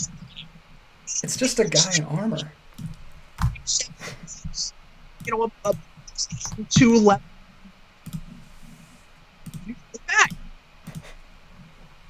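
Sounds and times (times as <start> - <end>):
faint low murmur: 0.0 - 12.0
sharp clicks: 8.0 - 8.3, 9.4 - 11.2.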